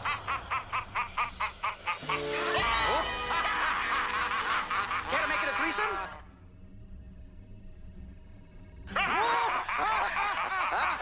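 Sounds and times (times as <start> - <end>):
high-pitched cackling laugh: 0.0 - 5.6, 8.9 - 11.0.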